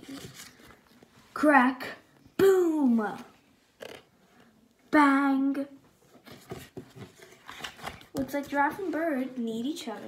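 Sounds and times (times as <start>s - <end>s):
paper rustling and flapping: 0.0s - 1.1s, 6.2s - 10.0s.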